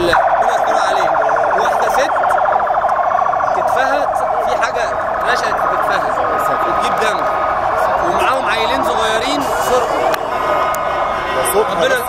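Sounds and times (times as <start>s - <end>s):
emergency vehicle siren warbling: 0.0s - 12.0s
faint voices: 0.0s - 12.0s.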